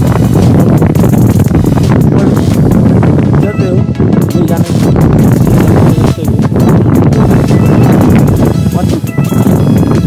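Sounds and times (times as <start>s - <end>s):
background music: 0.0s - 10.0s
gusty wind rumble on microphone: 0.0s - 10.0s
motorcycle engine running: 0.0s - 10.0s.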